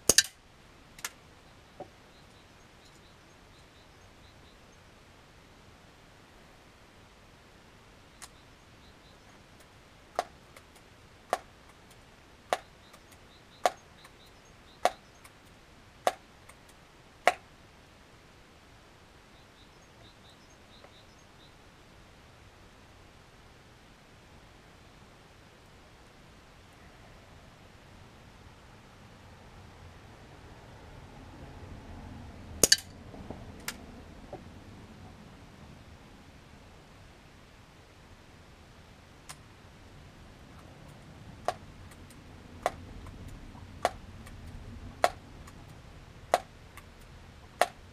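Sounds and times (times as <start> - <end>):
metallic click: 0.1 - 0.4, 32.6 - 32.9
air rifle shot crack: 32.6 - 32.9.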